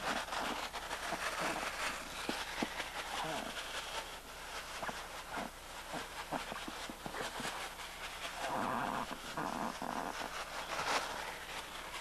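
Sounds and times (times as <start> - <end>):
animal growling: 8.4 - 10.3.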